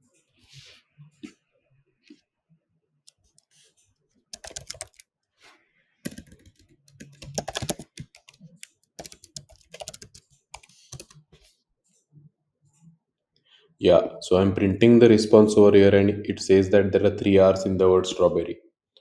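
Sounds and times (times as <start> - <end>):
computer keyboard typing: 4.3 - 5.1, 6.0 - 11.5.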